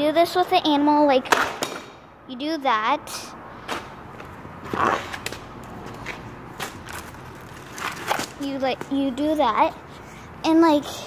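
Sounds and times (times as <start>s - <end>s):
scuffing scrape on concrete: 3.7s - 6.8s.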